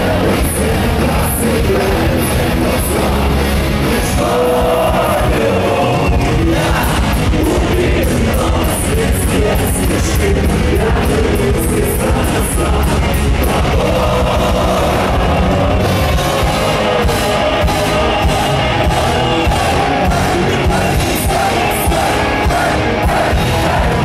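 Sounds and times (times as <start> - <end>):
heavy metal band playing live: 0.0 - 24.0
man singing: 0.0 - 24.0.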